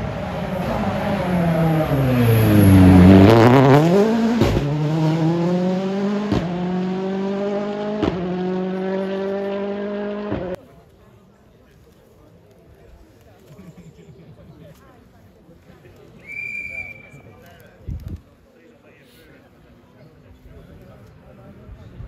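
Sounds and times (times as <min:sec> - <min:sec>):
rally car engine revving: 0:00.0 - 0:10.6.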